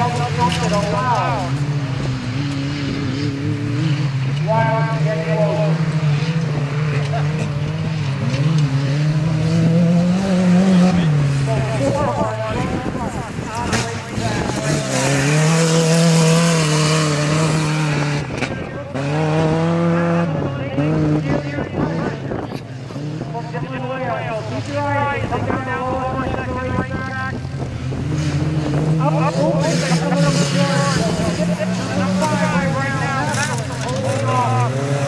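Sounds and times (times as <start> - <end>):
race truck engines revving: 0.0 - 35.0.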